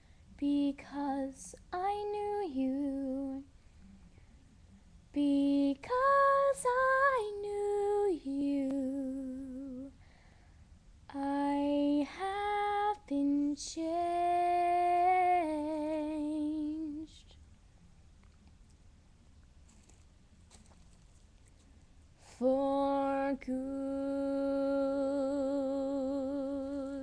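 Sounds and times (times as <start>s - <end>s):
girl singing a cappella: 0.3s - 3.5s, 5.1s - 10.0s, 11.1s - 17.4s, 22.2s - 27.0s.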